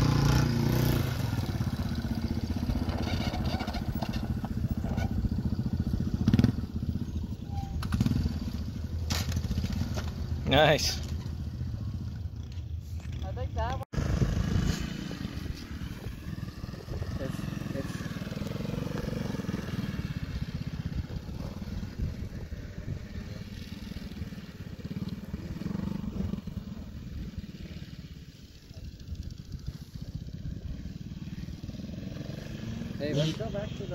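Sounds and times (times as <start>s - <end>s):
dirt bike engine revving: 0.0s - 11.6s, 13.9s - 28.2s, 29.1s - 33.9s.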